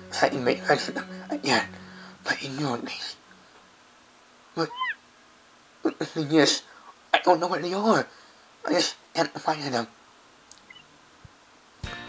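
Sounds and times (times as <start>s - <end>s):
person speaking: 0.0s - 3.4s, 4.6s - 5.0s
cat meowing: 4.6s - 5.0s.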